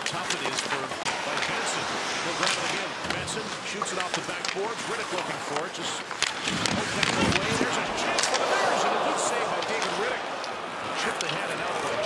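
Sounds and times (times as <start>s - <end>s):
arena crowd noise: 0.0s - 12.0s
hockey sticks clacking on puck: 0.0s - 12.0s.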